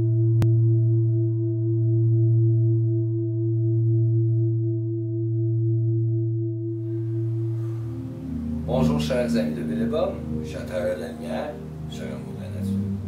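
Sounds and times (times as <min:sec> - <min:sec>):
layered pulsing drone music: 0:06.8 - 0:13.0.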